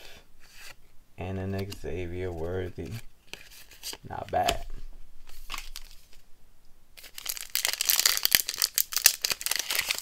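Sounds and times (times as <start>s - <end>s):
plastic wrapper crinkling and tearing: 7.0s - 10.0s.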